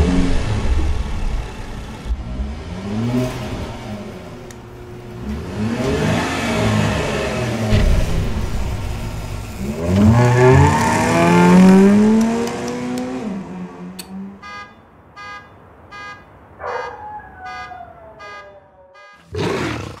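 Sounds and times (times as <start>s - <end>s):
car engine revving past: 5.2s - 14.4s
falling wail: 16.6s - 19.0s
big cat roaring: 19.3s - 20.0s.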